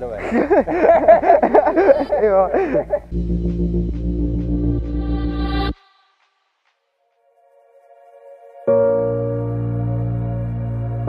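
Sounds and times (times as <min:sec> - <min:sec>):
music of held deep tones: 0:00.0 - 0:05.8, 0:08.7 - 0:11.0.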